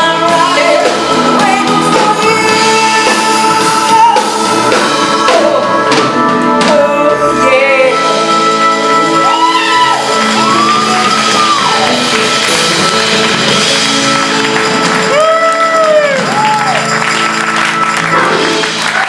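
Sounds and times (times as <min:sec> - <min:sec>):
drums: 0:00.0 - 0:19.0
electric guitar: 0:00.0 - 0:19.0.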